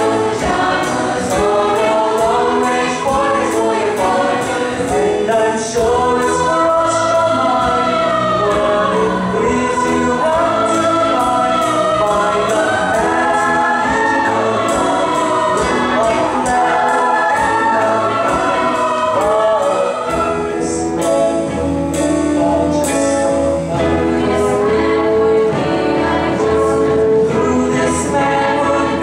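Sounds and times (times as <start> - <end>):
chorus singing: 0.0 - 29.0
instrumental accompaniment: 0.0 - 29.0.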